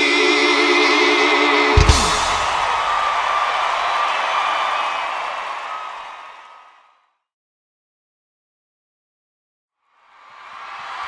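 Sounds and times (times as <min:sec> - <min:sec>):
crowd cheering and applauding: 0:01.7 - 0:06.8, 0:10.3 - 0:11.0.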